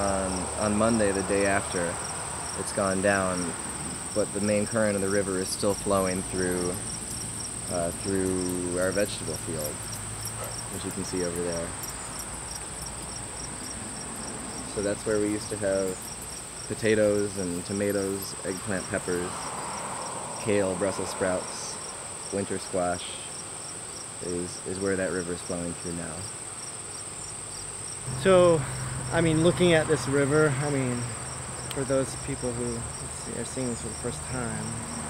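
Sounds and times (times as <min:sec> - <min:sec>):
crickets chirping: 0:00.0 - 0:35.0
insects trilling: 0:00.0 - 0:35.0.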